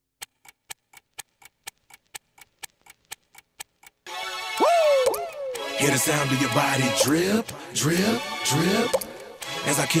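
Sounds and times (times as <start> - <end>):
faint even ticking: 0.2 - 4.1.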